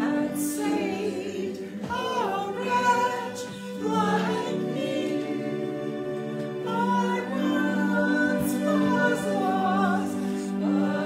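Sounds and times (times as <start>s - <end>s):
choir singing: 0.0s - 11.0s.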